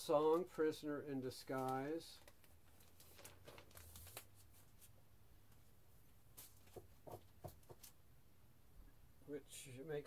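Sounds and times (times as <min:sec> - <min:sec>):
record jacket rustling and clicking: 0:01.5 - 0:04.9.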